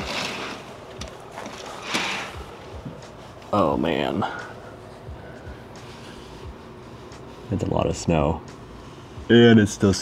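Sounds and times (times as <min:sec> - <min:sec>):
curtain swish: 0:00.0 - 0:00.7, 0:01.4 - 0:02.4.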